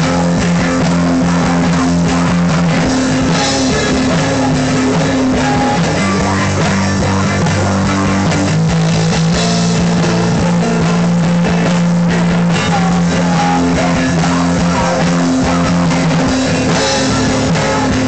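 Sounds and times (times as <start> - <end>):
electric guitar chords: 0.0 - 18.0.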